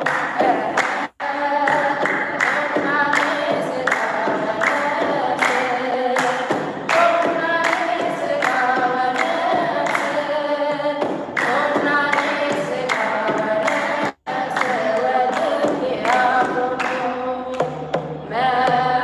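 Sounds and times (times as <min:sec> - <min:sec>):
sharp regular beat: 0:00.0 - 0:10.2
woman singing a hymn: 0:00.4 - 0:17.6, 0:18.3 - 0:19.0.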